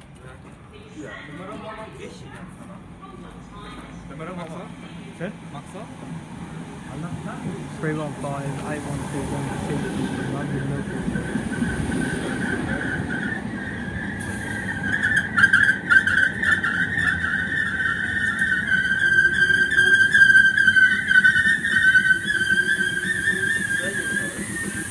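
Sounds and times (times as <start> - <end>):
electric train whine: 5.5 - 24.9
air hiss: 14.2 - 14.9, 21.6 - 24.9
sharp clicks of wheels: 14.2 - 23.8.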